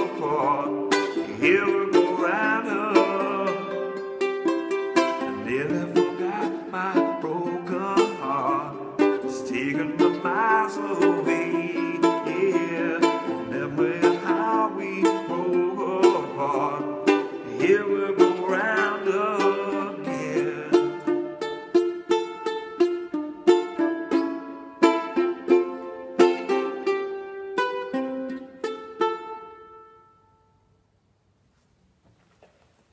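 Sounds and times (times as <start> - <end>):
man singing: 0.0 - 4.1, 5.0 - 21.4
ukulele strumming: 0.0 - 30.8.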